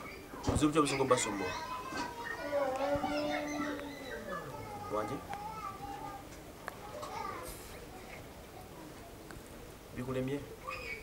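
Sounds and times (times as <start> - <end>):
indistinct voices: 1.9 - 7.2.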